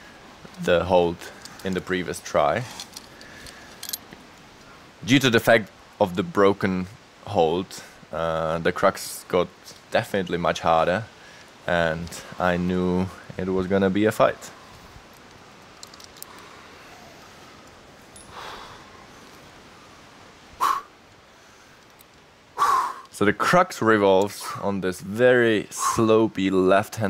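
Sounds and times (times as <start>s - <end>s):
low steady hiss: 0.0s - 27.0s.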